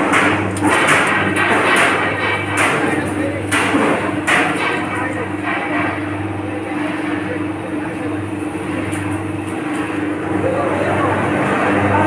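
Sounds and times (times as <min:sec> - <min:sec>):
steady motor hum: 0:00.0 - 0:12.0.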